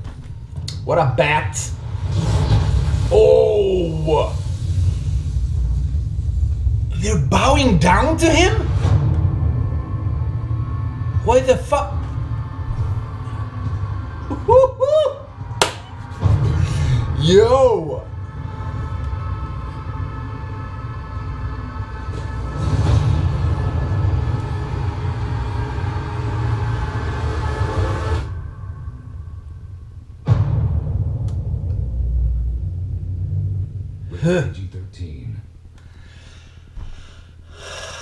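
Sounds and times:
low rumbling drone: 0.0s - 38.0s.

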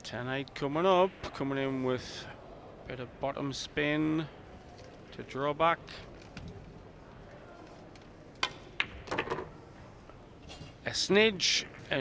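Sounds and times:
soft rattle of pool balls: 4.4s - 12.0s
pool balls clicking: 8.4s - 9.6s.

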